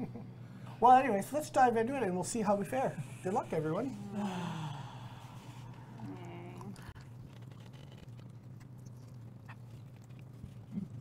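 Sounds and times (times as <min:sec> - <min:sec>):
person sighing: 0:04.0 - 0:06.6
person humming: 0:05.9 - 0:06.8.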